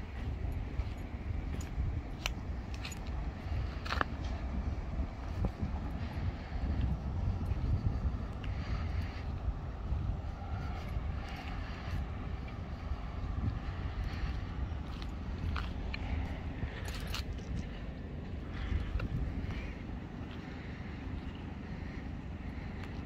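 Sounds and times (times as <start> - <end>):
wind on microphone: 0.0 - 20.8
diesel engine idling: 0.0 - 23.0.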